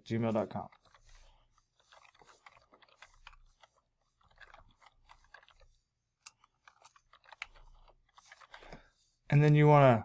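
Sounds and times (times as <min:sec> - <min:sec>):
computer keyboard typing: 0:00.4 - 0:08.8.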